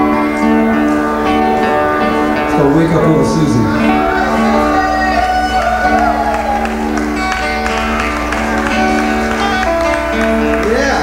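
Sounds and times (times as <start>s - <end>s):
rock band with electric guitars: 0.0s - 11.0s.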